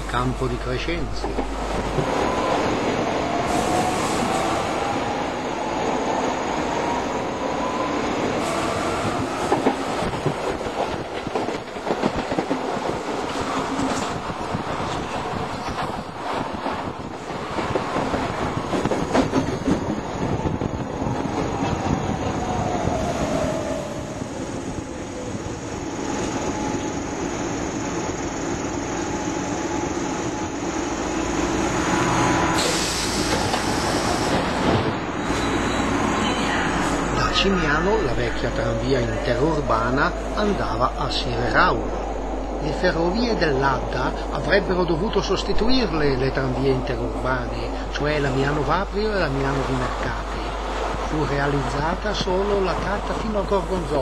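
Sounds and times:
pitched train whine: 0.0 - 54.0
train rumble and rail noise: 0.0 - 54.0.

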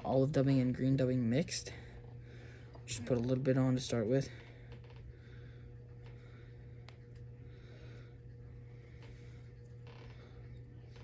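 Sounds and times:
low electrical hum: 0.0 - 11.0
faint breaths: 1.7 - 2.9, 4.3 - 11.0.

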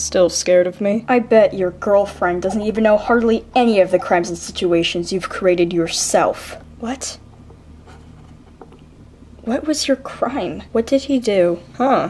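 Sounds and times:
low steady hum: 0.0 - 12.0
scratchy handling noise: 7.4 - 8.9.

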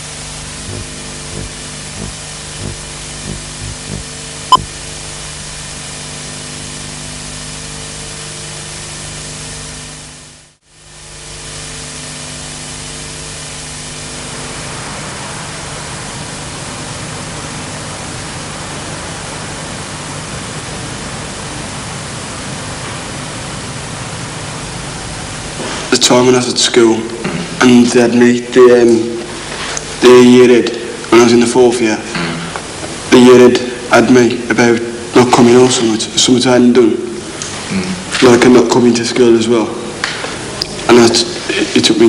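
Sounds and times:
steady hiss: 0.0 - 10.0, 10.9 - 42.0
low hum: 0.0 - 35.5.

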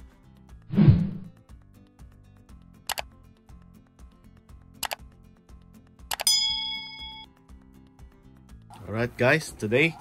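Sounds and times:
notification bell ding: 6.2 - 7.3.

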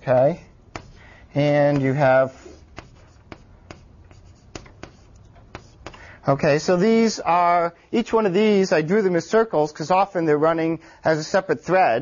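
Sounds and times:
chalk taps on a board: 0.7 - 1.0, 1.7 - 2.1, 2.7 - 6.0.

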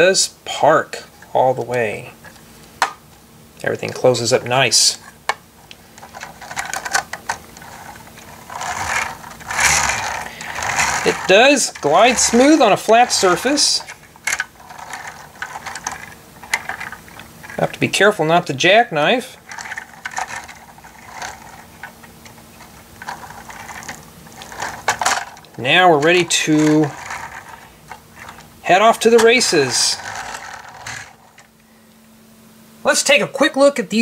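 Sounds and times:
plastic bricks clicking and rattling: 5.9 - 17.8, 19.4 - 31.5
toy truck rolling on tabletop: 6.0 - 18.4, 19.4 - 31.5.

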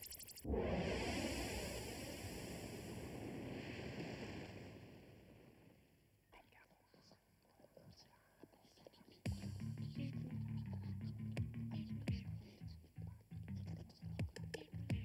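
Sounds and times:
music with low bass: 9.3 - 15.0.

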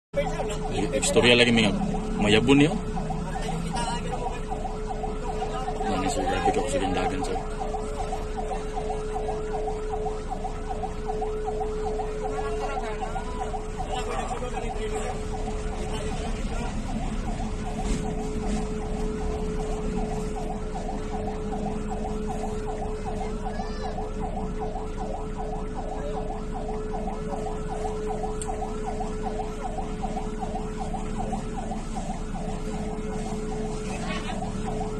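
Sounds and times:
constant hum: 0.2 - 34.9
siren yelping: 0.2 - 34.9.

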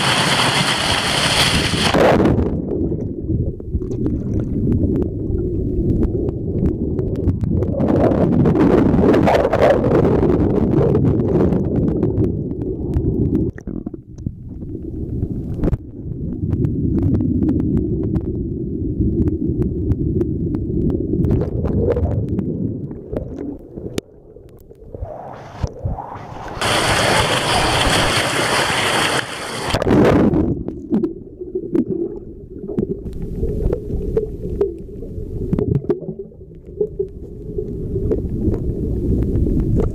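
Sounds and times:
rush of water and air: 0.0 - 39.9
underwater stream rumble and gurgle: 0.0 - 39.9.

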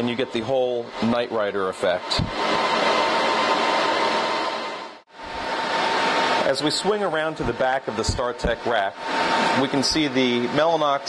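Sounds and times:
server cooling fans rushing: 0.0 - 11.0.

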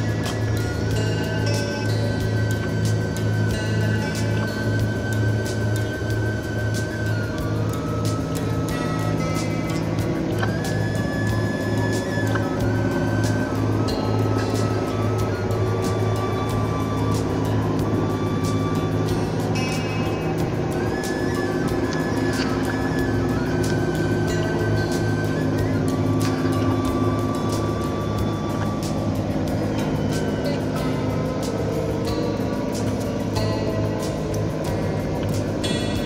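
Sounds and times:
background music: 0.0 - 36.0.

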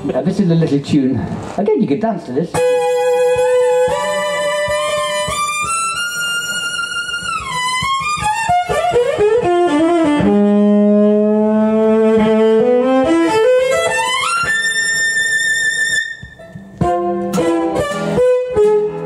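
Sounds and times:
acoustic guitar accompaniment: 2.6 - 19.0
fiddle playing a dance tune: 2.6 - 19.0.

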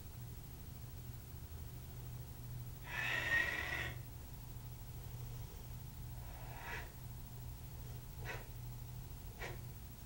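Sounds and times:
forceful hissing breath: 2.8 - 4.0, 6.2 - 7.0.

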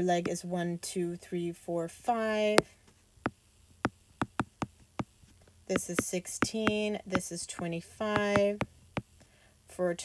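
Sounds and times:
stylus tapping on glass screen: 3.8 - 5.1, 5.7 - 8.7.

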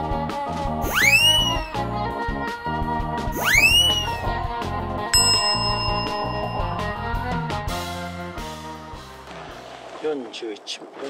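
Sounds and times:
background music: 0.0 - 9.8
whistle-like glides: 0.8 - 1.9, 3.3 - 4.4, 5.2 - 7.3
bell-like ding: 5.2 - 7.5.

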